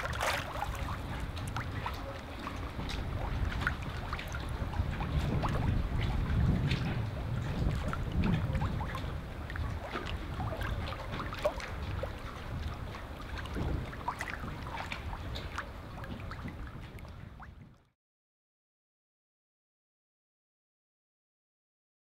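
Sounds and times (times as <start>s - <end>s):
wind rumble on microphone: 0.0s - 17.9s.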